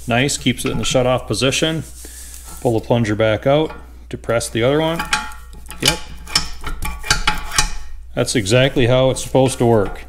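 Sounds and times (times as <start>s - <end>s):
metal lever clicking and clinking: 4.9s - 7.8s.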